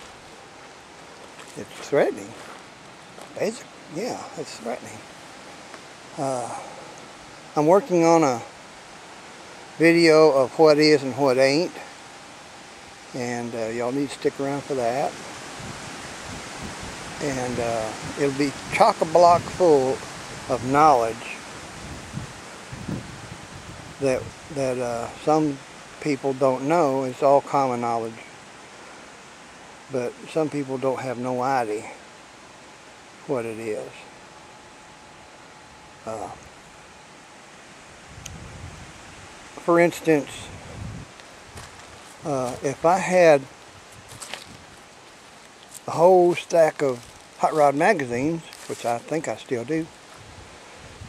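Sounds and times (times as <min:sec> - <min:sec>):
outdoor hiss: 0:00.0 - 0:51.0
wind through trees: 0:00.0 - 0:51.0
wind gusts on microphone: 0:14.6 - 0:26.0, 0:37.9 - 0:43.0, 0:43.7 - 0:44.9, 0:48.1 - 0:51.0.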